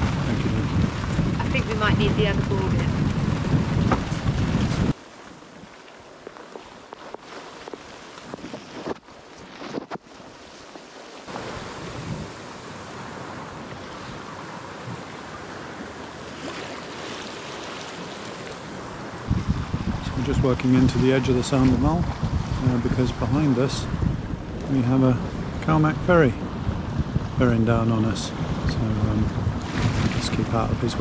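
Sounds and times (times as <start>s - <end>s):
wind noise on microphone: 0.0s - 17.3s, 18.7s - 31.0s
water rushing along hull: 0.0s - 31.0s.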